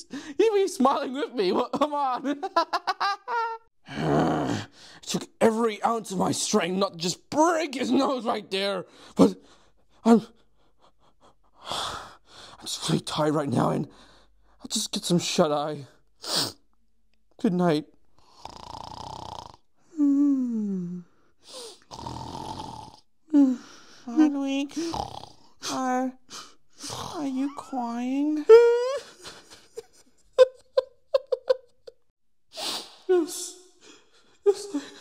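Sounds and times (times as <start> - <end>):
person sobbing: 1.3 - 4.6, 28.4 - 32.0, 33.1 - 35.0
person snoring: 3.9 - 4.8, 18.2 - 23.5, 24.8 - 25.6, 26.8 - 27.2
person sniffling: 32.5 - 33.2.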